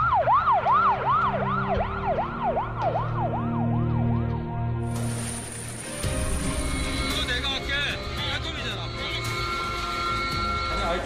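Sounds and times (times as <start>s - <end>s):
ambulance siren yelping: 0.0s - 4.6s.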